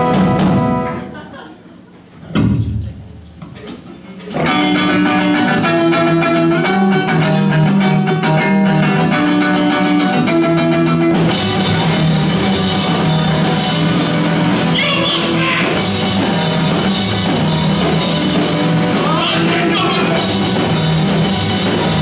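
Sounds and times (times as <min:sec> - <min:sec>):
electric guitar chords: 0:00.0 - 0:01.2, 0:04.4 - 0:22.0.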